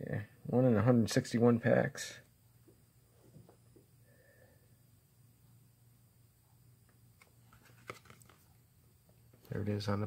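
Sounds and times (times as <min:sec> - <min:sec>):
low steady room hum: 0:00.0 - 0:10.0.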